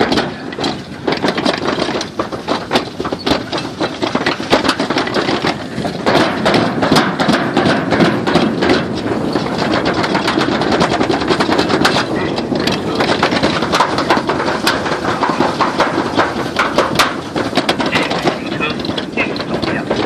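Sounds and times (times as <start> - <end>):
rapid irregular clicks: 0.0 - 20.0
sled rumbling down metal slide: 0.0 - 20.0.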